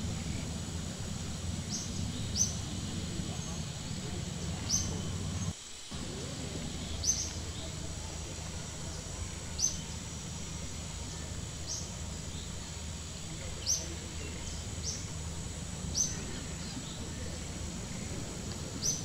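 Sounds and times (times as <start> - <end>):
low outdoor rumble: 0.0 - 19.0
bird high chirps: 1.3 - 5.5, 6.5 - 8.2.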